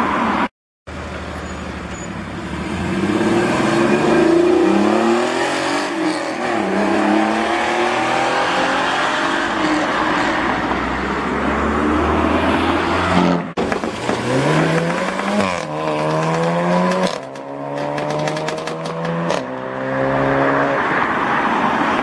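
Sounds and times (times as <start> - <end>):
car engine accelerating: 11.5 - 20.8.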